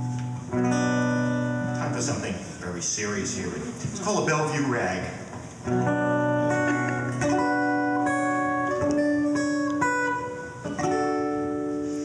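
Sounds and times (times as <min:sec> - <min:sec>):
acoustic guitar strumming chords: 0:00.0 - 0:02.6, 0:03.6 - 0:12.0.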